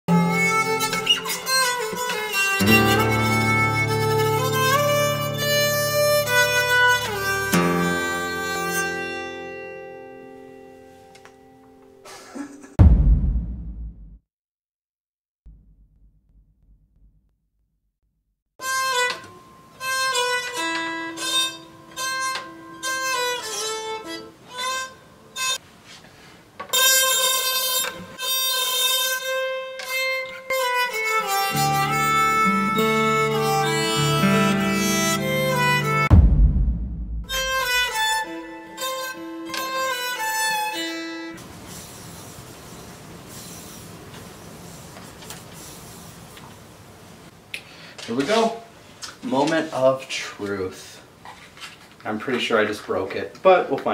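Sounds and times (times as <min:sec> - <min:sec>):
bowed acoustic guitar notes: 0:00.1 - 0:12.0, 0:30.6 - 0:41.3
loud low thump with falling slide: 0:12.8 - 0:14.2, 0:36.1 - 0:37.8.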